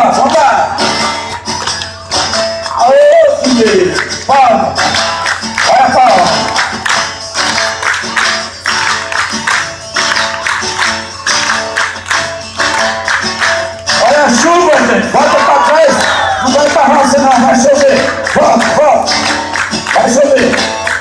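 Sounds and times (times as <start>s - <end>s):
crowd clapping along: 0.0s - 21.0s
live band with acoustic guitar: 0.0s - 21.0s.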